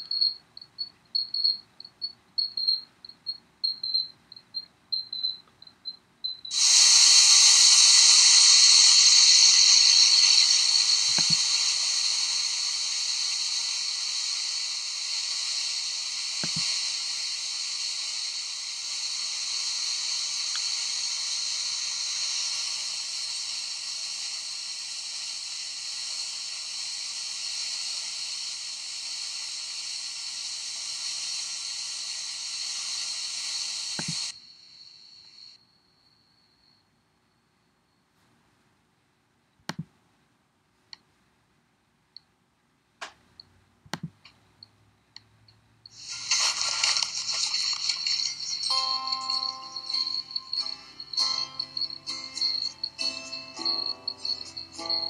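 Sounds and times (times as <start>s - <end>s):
cricket chirping: 0.0s - 38.2s, 45.8s - 55.0s
water cascading and splashing: 46.0s - 48.4s.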